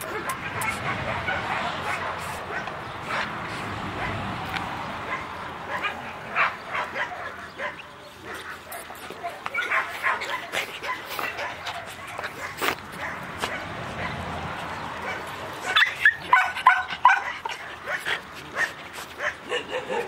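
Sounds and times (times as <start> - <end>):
puppies whining and yipping: 6.8 - 13.2, 15.0 - 20.0.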